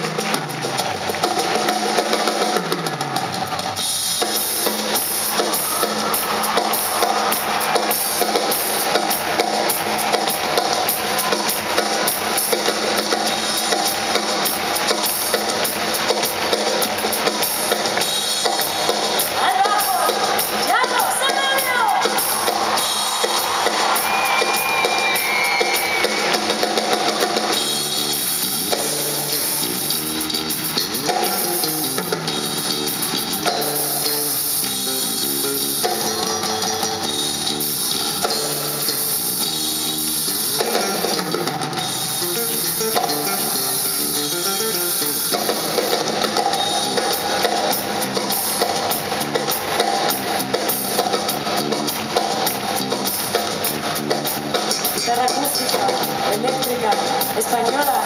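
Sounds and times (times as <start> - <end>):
drum kit: 0.0 - 58.0
electric guitar playing lead: 4.4 - 58.0
bass guitar: 26.0 - 58.0.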